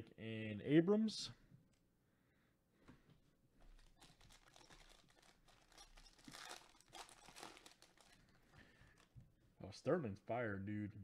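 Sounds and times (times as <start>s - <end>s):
foil wrapper tearing and crinkling: 3.8s - 8.3s.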